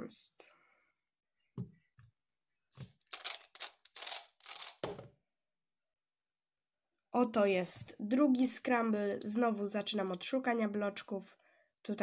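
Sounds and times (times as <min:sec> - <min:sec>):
rasping plastic puzzle cube twists: 0:03.1 - 0:04.8.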